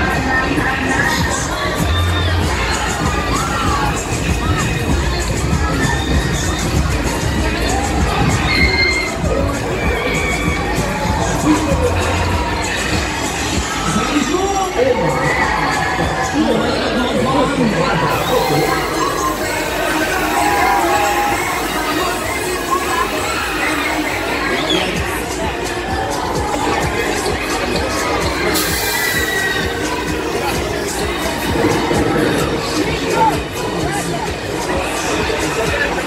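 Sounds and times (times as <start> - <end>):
crowd noise: 0.0 - 36.0
riders screaming and shouting: 0.0 - 36.0.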